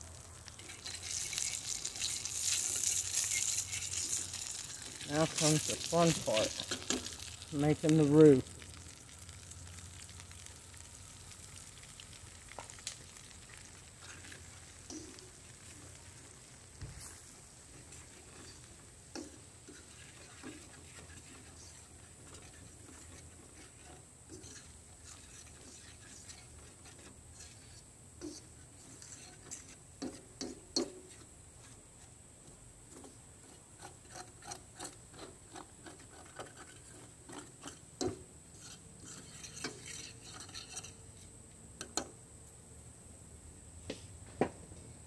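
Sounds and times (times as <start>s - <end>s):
flour sizzling in hot oil: 0.0s - 42.6s
metal spoon scraping a pan: 0.6s - 8.1s, 13.5s - 15.8s, 17.7s - 32.2s, 32.9s - 42.1s.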